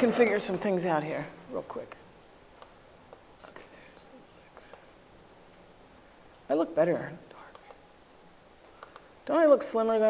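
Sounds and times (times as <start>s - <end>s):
woman whispering: 3.4s - 4.9s, 7.1s - 7.8s
faint clicks: 7.4s - 7.8s, 8.7s - 9.1s.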